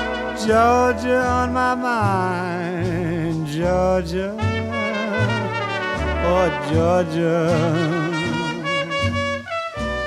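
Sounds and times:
jazz band playing: 0:00.0 - 0:10.0
trumpet and brass notes: 0:00.0 - 0:10.0
held sung note with vibrato: 0:04.4 - 0:09.3.

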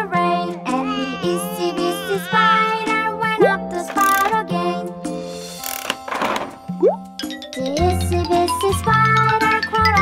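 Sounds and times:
children's background music: 0:00.0 - 0:10.0.

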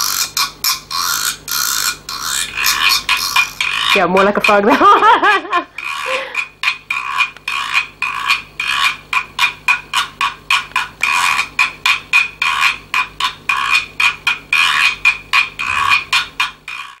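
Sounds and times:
guiro scraped with a stick: 0:00.0 - 0:17.0.

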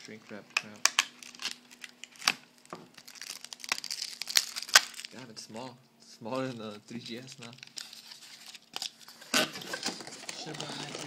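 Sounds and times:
plastic wrap crinkling: 0:00.0 - 0:05.3, 0:06.3 - 0:11.0
plastic wrap snapping: 0:00.6 - 0:05.2, 0:07.1 - 0:11.0.

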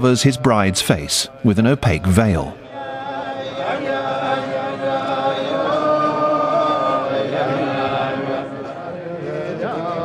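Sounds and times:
men singing together: 0:02.6 - 0:10.0.

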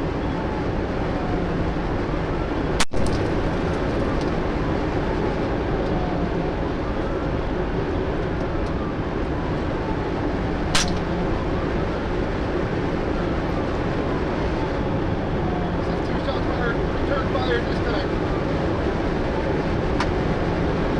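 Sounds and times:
faint siren wailing: 0:00.0 - 0:20.9
road and engine noise in car: 0:00.0 - 0:20.9
sharp click: 0:10.8 - 0:11.1.

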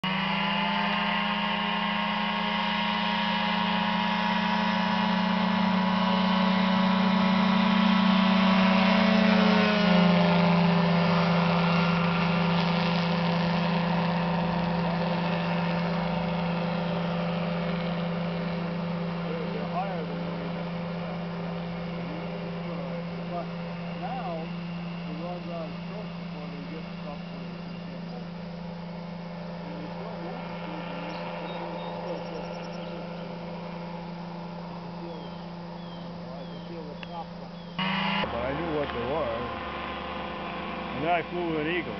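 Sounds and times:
light aircraft engine and propeller: 0:00.0 - 0:41.9.

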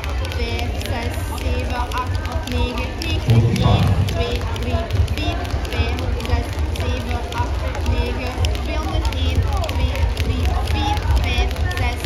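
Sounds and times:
skipping rope tapping floor: 0:00.0 - 0:12.0
low sound burst: 0:03.2 - 0:04.6.

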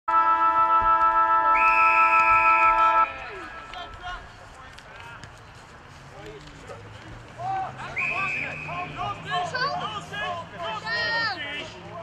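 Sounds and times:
multi-tone siren hooter: 0:00.1 - 0:03.4.

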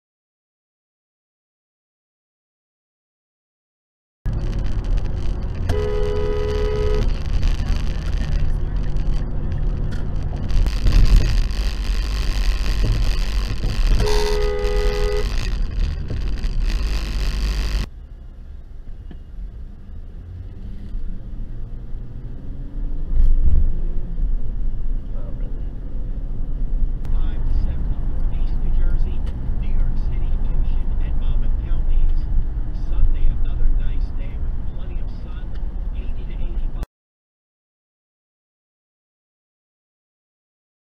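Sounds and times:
car engine: 0:04.3 - 0:36.8
road noise inside car: 0:04.3 - 0:36.9
car horn honking: 0:05.6 - 0:07.7, 0:12.9 - 0:16.1.

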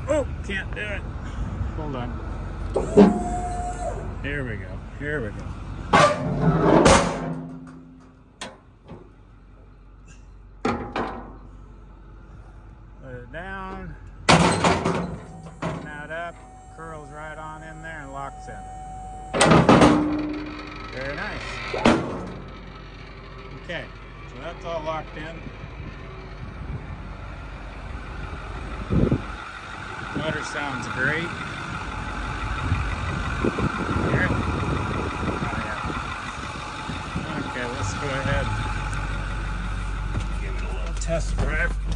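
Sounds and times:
diesel engine idling: 0:00.0 - 0:41.9
metal liftgate clanking and banging: 0:02.8 - 0:03.4, 0:05.9 - 0:09.2, 0:10.6 - 0:11.4, 0:14.3 - 0:16.5, 0:19.3 - 0:20.8, 0:21.7 - 0:22.6
loud thump: 0:14.3 - 0:15.9.

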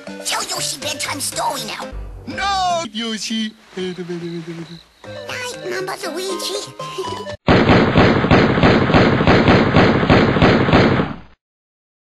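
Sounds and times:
harsh distorted beating noise: 0:01.9 - 0:02.8.

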